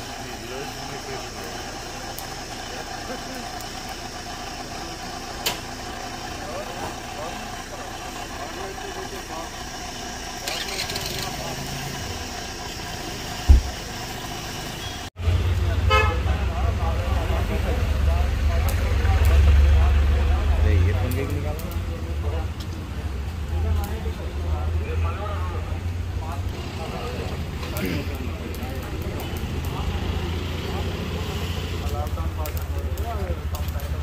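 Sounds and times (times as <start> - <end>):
faint voices: 0.0 - 14.1, 15.3 - 34.0
car engine idling: 0.0 - 34.0
loud thump: 13.4 - 13.8.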